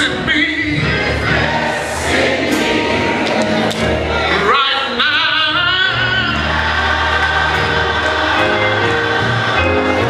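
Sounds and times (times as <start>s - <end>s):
gospel choir singing: 0.0s - 10.0s
keyboard: 0.0s - 10.0s
organ: 0.0s - 10.0s.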